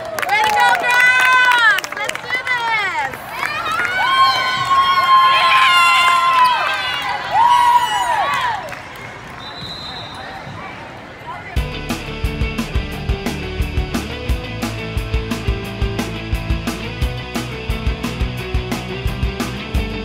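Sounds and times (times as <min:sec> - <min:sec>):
crowd noise: 0:00.0 - 0:20.0
rock music: 0:11.6 - 0:20.0.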